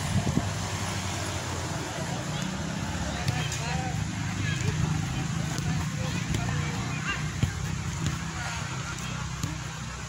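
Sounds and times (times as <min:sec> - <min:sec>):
low rumble of outdoor noise: 0:00.0 - 0:10.0
football kicked on grass: 0:07.3 - 0:08.4.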